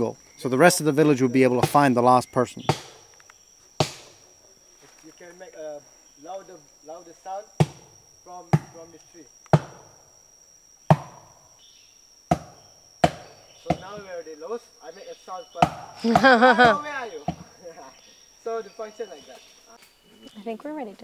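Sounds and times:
high insect drone: 0.0 - 21.0
hollow knocks of branch on tree: 2.7 - 4.2, 7.6 - 7.9, 9.5 - 9.9, 10.9 - 11.3, 12.3 - 14.1.

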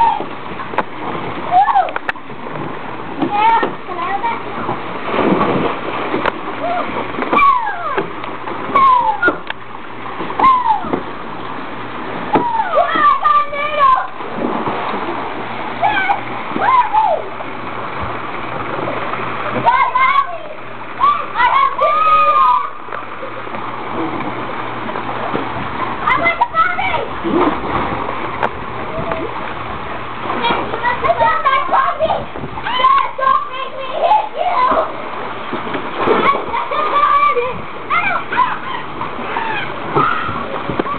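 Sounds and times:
water splashing in pool: 0.0 - 40.9
children shouting and whooping: 1.5 - 2.1, 6.6 - 8.1, 8.7 - 9.4, 10.4 - 11.0, 12.3 - 14.2, 15.8 - 17.3, 19.6 - 23.3, 30.4 - 35.0, 36.2 - 40.9.

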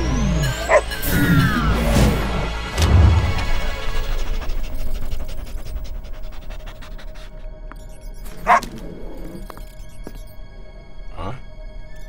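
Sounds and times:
background music: 0.0 - 12.0
small dog barking: 8.4 - 8.6.

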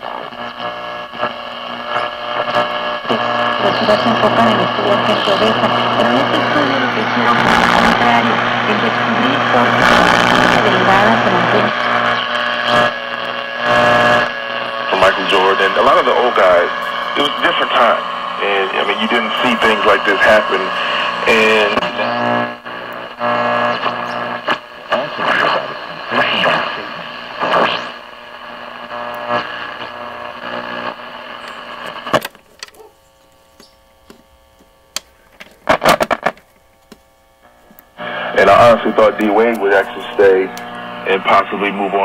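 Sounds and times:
radio static hiss: 0.0 - 42.0
steady hum tones: 0.0 - 42.0.

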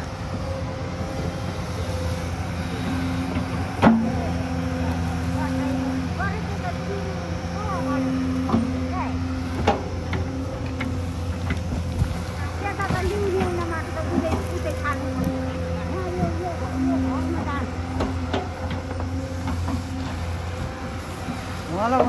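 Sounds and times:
excavator diesel engine running: 0.0 - 22.0
hydraulic whine: 0.0 - 22.0.

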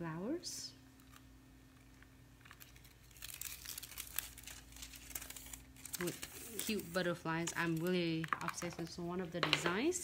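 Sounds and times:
plastic foil crinkling: 1.0 - 9.0.

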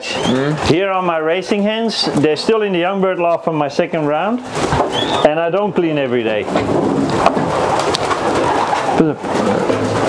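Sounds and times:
pigeons cooing: 4.6 - 5.4, 6.7 - 10.0.

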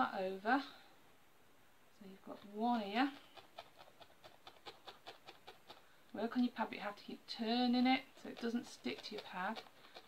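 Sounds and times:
felting needle poking foam: 2.2 - 10.0.

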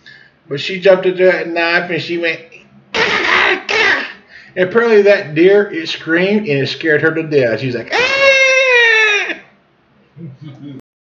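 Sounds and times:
man's high-pitched mock scream: 3.0 - 4.2, 7.9 - 9.5.

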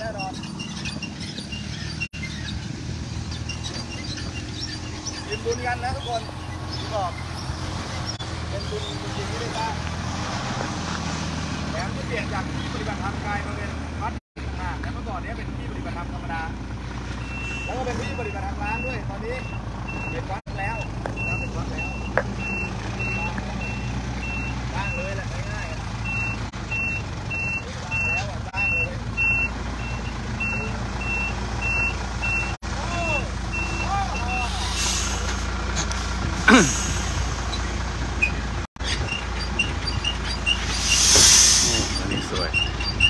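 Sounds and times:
truck reversing alarm beeping: 0.0 - 2.6, 17.2 - 35.6, 39.0 - 43.0
truck engine running: 0.0 - 43.0
loud burst of noise: 40.8 - 42.0.

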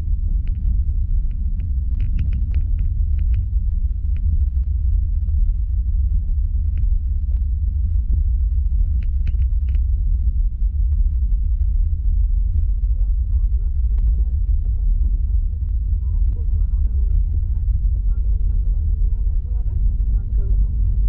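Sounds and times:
airliner engines and wheels rumbling: 0.0 - 21.0
light clicks and rattles: 0.3 - 4.4, 8.6 - 9.9.

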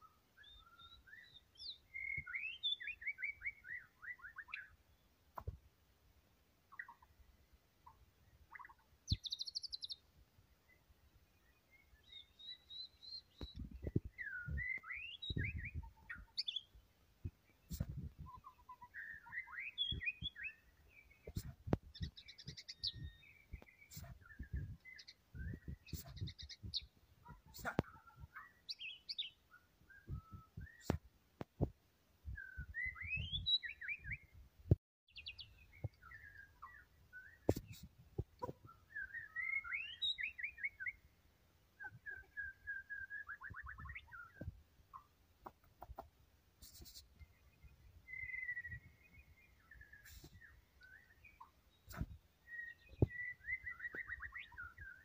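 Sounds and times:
bird singing whistles and trills: 0.0 - 4.8, 11.5 - 16.7, 17.7 - 31.0, 32.3 - 34.3, 35.1 - 37.9, 38.5 - 41.0, 41.8 - 44.5, 47.6 - 55.0.

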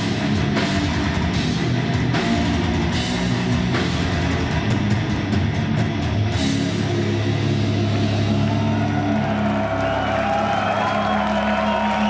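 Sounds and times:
distorted guitars holding a chord: 0.0 - 9.8
crowd whooping: 7.4 - 12.0.

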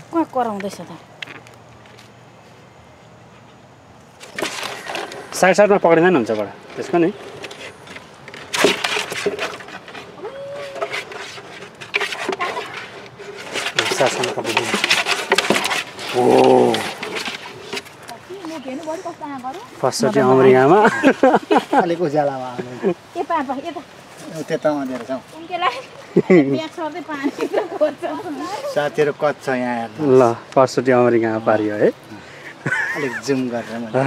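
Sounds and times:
rustling and scraping: 0.0 - 30.4
voices exclaiming: 10.1 - 11.2.

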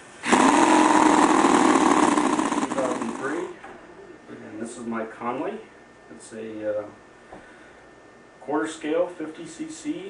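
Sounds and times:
model engine running fast: 0.2 - 3.5.

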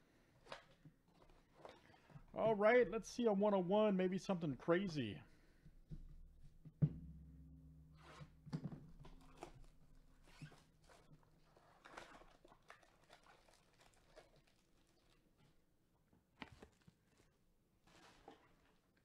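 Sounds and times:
packs rustling: 9.0 - 15.6
cardboard tearing: 9.1 - 15.2.

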